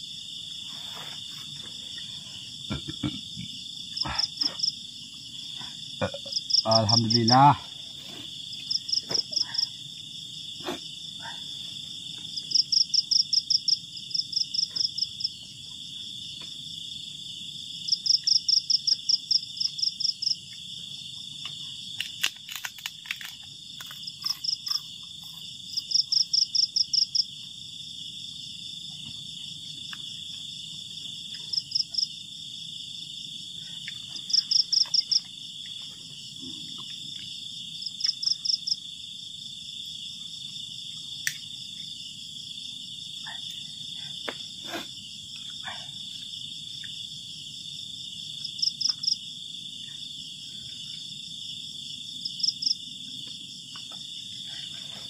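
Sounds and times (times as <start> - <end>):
insects droning: 0.0 - 55.0
rapid insect chirps: 0.0 - 55.0.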